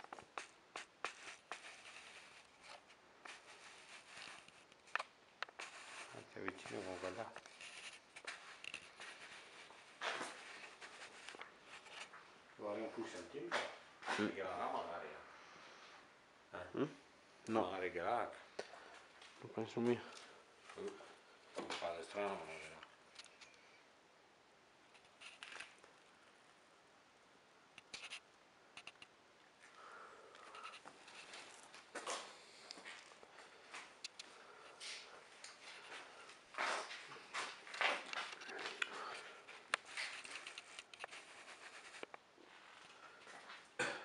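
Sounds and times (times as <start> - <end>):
faint scratching clicks: 0.0 - 12.2, 27.8 - 29.2, 30.4 - 31.7, 39.7 - 42.2
short rustle: 0.0 - 12.3.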